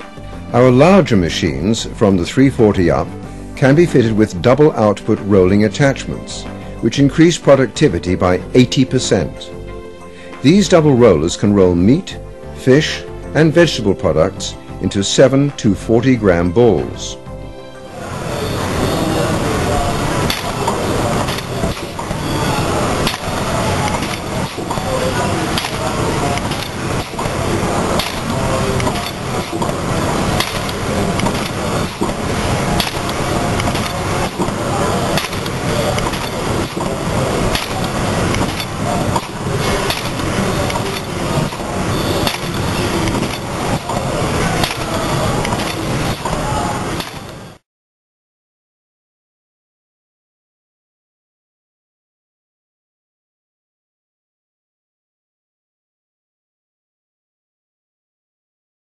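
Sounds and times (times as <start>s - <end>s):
food-forming machine clattering: 23.0s - 47.3s.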